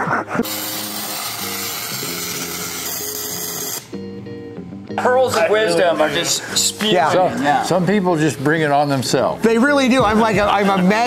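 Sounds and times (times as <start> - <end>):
background music: 0.0 - 11.0
arc welding hiss: 0.4 - 4.0.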